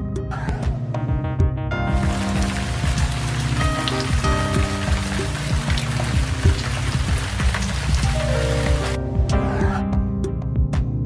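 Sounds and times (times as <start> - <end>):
background music: 0.0 - 11.0
rain hiss: 1.9 - 9.0.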